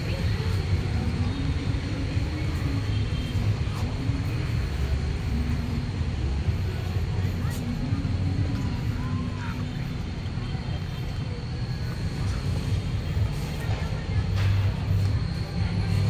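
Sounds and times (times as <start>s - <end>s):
faint voices talking: 0.0s - 16.0s
low city ambience rumble: 0.0s - 16.0s.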